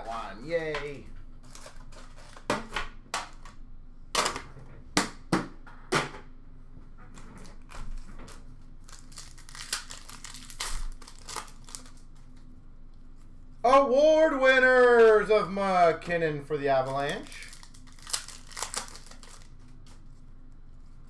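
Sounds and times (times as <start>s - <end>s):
foil wrappers crinkling and tearing: 0.8s - 2.5s, 7.6s - 12.5s, 16.8s - 20.2s.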